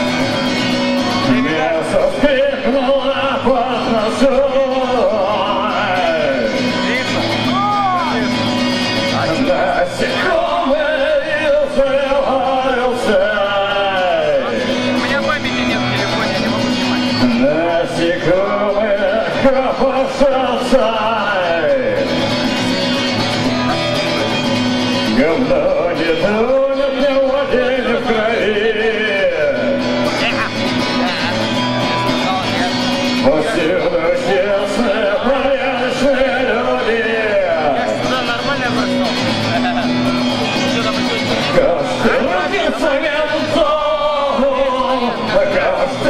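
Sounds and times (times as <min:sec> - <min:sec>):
electric guitar strumming: 0:00.0 - 0:46.0
man singing: 0:00.0 - 0:46.0.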